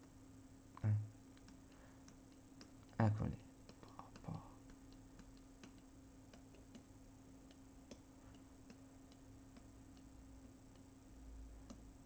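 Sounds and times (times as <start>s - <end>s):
low steady hum: 0.0s - 12.0s
computer mouse clicks: 1.3s - 3.0s, 3.6s - 10.1s, 11.6s - 11.9s.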